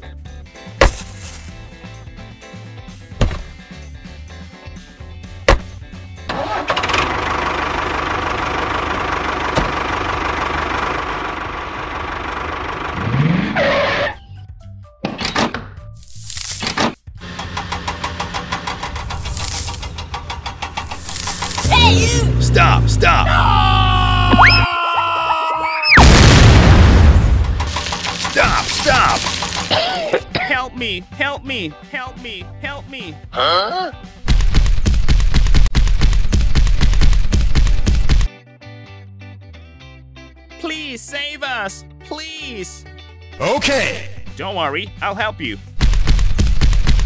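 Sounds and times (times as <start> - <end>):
background music: 0.0 - 6.8, 27.9 - 34.4, 38.3 - 46.0
tractor engine running: 5.4 - 14.1, 17.2 - 24.6, 26.2 - 30.3
deep boom: 26.0 - 27.8.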